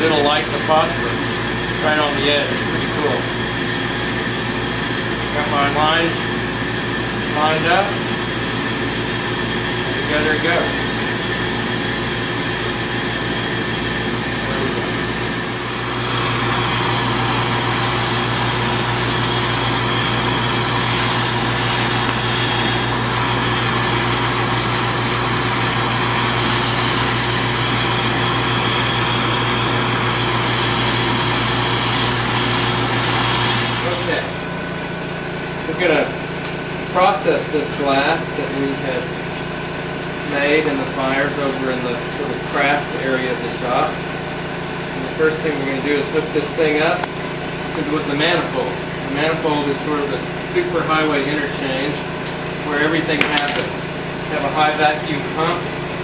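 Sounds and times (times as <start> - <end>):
gas burners roaring: 0.0 - 56.0.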